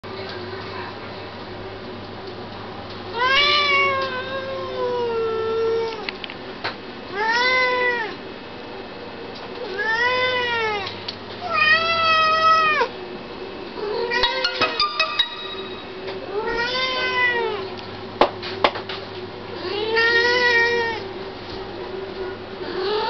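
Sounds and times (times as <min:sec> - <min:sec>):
cat meowing: 0:03.1 - 0:06.0, 0:07.2 - 0:08.2, 0:09.7 - 0:12.9, 0:16.3 - 0:17.6, 0:19.6 - 0:21.0.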